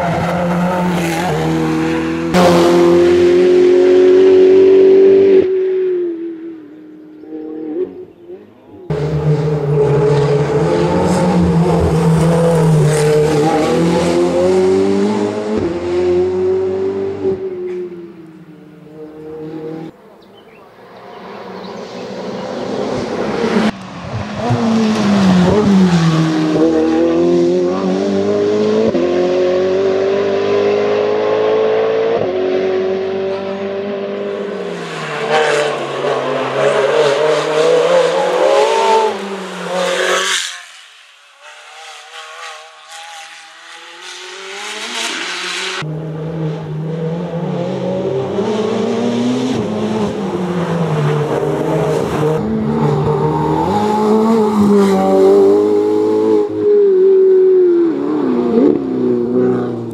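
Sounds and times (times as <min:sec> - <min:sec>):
race car engine driven hard: 0:00.0 - 0:59.9.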